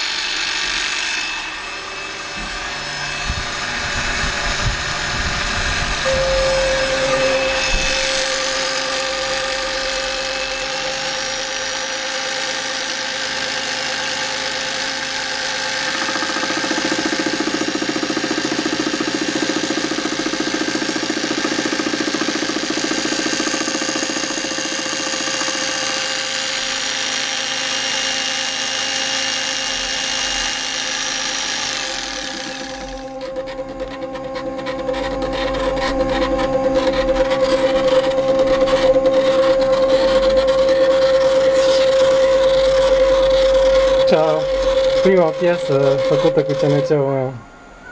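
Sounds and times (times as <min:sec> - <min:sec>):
mill spindle motor whine: 0:00.0 - 0:47.9.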